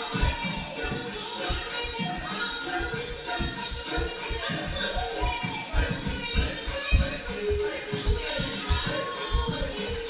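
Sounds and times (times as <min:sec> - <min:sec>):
dance music with bass beat: 0:00.0 - 0:10.0.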